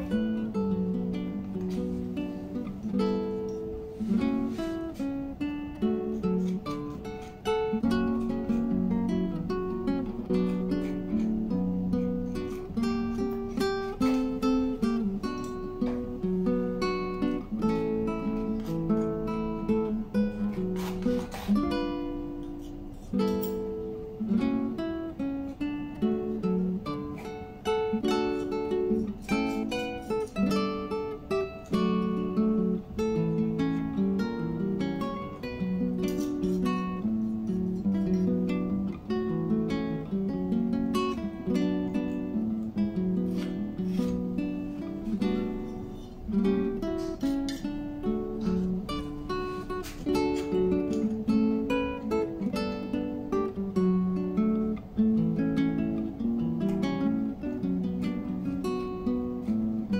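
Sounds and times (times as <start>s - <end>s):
acoustic guitar music: 0.0s - 59.9s.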